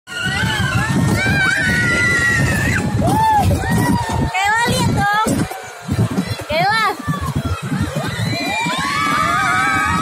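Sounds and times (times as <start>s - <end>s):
roller coaster rumble: 0.1s - 10.0s
children squealing: 8.0s - 10.0s.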